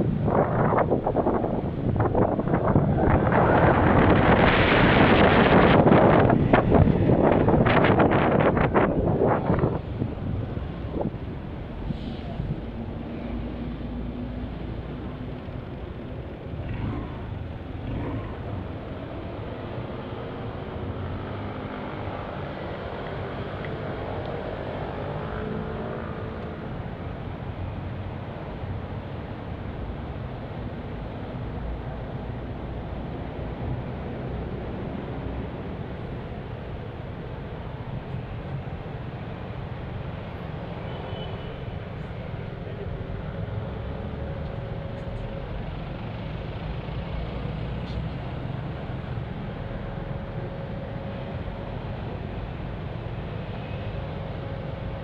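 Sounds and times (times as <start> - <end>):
wind noise on microphone: 0.0 - 45.4
passing city traffic: 0.0 - 55.0.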